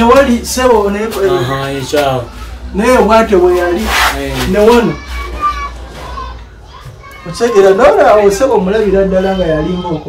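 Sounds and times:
faint voices: 0:00.0 - 0:10.0
child's voice: 0:04.4 - 0:07.8.

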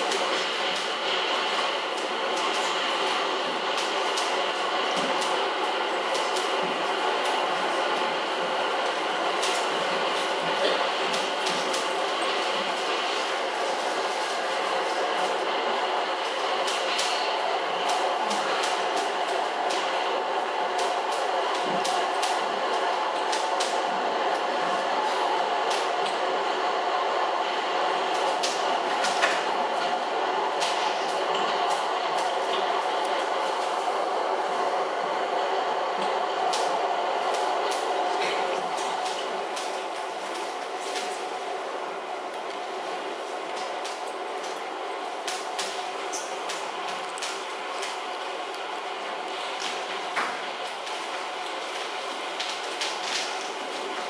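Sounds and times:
train-like noise: 0:00.0 - 0:54.0.

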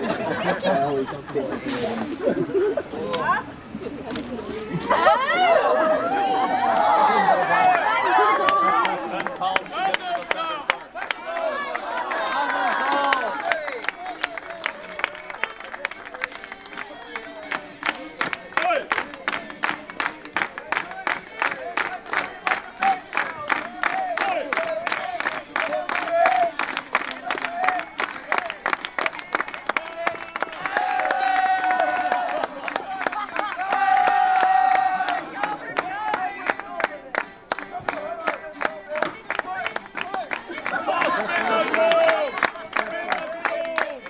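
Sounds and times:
voices singing and calling: 0:00.0 - 0:44.0
crowd clapping along: 0:06.3 - 0:44.0.

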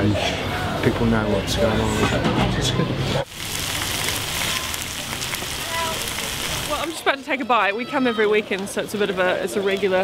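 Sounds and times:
sausages and onions sizzling: 0:03.2 - 0:08.4.

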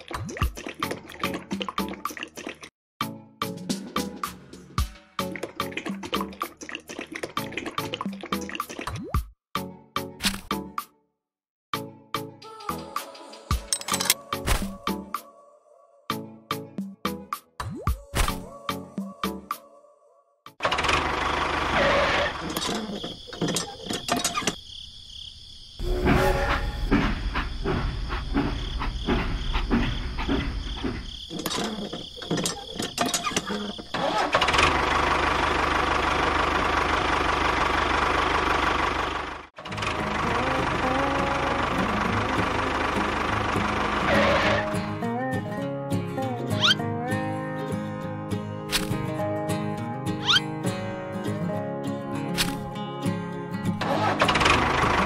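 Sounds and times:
engine running: 0:20.6 - 0:23.1, 0:33.9 - 0:45.0, 0:53.8 - 0:55.0.

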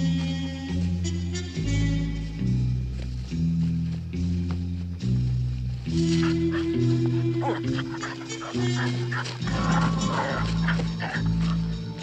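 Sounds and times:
music with held low notes: 0:00.0 - 0:12.0
dog making short vocal sounds: 0:06.1 - 0:11.7.

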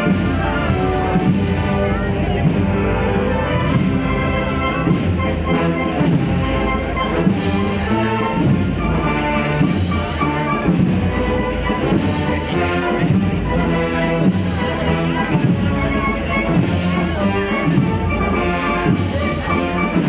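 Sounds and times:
brass band playing a march: 0:00.0 - 0:20.0.

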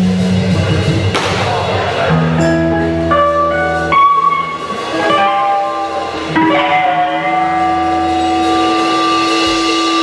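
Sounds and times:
electric guitar chord ringing: 0:02.2 - 0:10.0.

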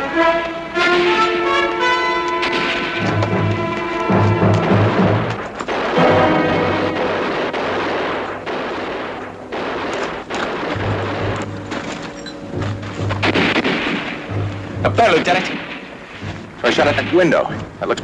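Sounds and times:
orchestral music: 0:00.0 - 0:17.8
gunshots: 0:02.3 - 0:18.0.

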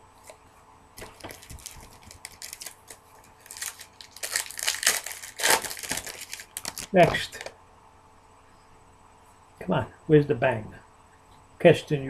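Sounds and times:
foil wrapper tearing and crinkling: 0:01.0 - 0:07.5.

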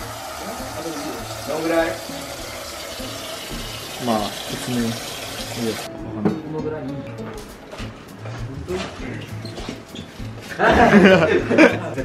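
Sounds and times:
faucet water filling metal saucepan: 0:00.0 - 0:05.9.

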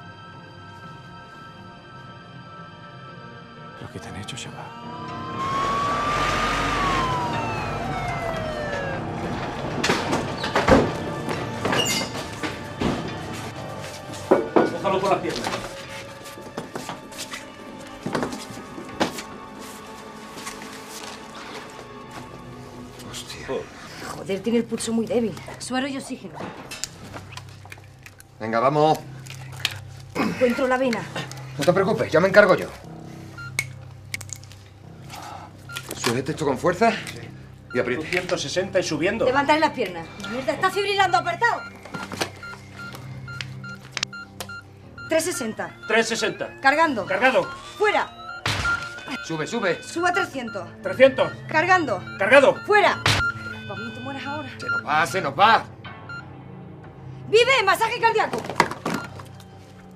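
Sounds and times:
film score music: 0:00.0 - 0:59.9
ambulance siren wail: 0:03.8 - 0:11.3, 0:45.1 - 0:54.0
medical monitor beep: 0:33.1 - 0:33.8, 0:35.6 - 0:36.4, 0:37.2 - 0:39.6, 0:40.2 - 0:56.4, 0:58.6 - 0:59.4.

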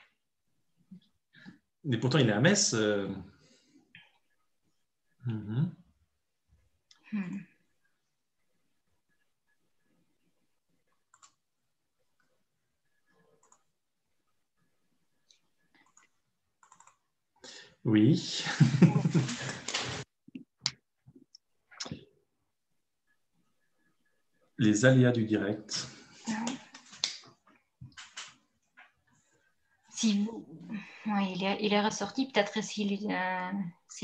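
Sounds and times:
person murmuring: 0:05.3 - 0:05.7
soft clicks: 0:13.3 - 0:13.7.

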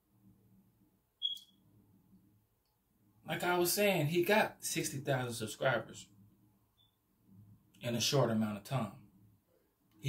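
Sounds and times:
faint room hum: 0:00.0 - 0:10.0
short high-pitched chirp: 0:01.2 - 0:01.6.

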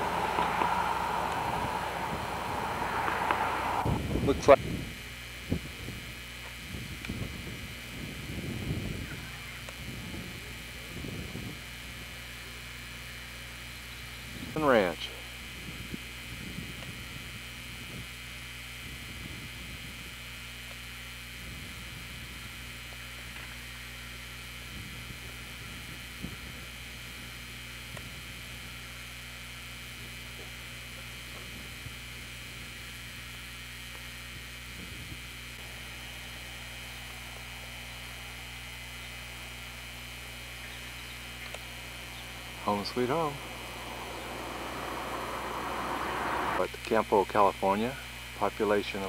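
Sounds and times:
low hum: 0:00.0 - 0:04.2, 0:35.6 - 0:46.6
even hiss: 0:00.0 - 0:04.5, 0:35.6 - 0:46.7.

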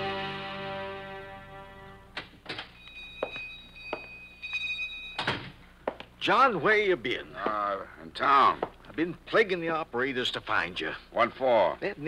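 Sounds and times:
two-tone high ringing: 0:02.7 - 0:05.3.

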